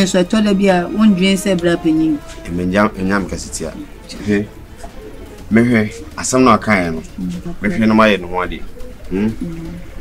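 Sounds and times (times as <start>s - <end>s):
man talking: 2.4s - 4.6s, 5.5s - 7.0s, 7.6s - 9.4s
bird cooing: 4.6s - 10.0s.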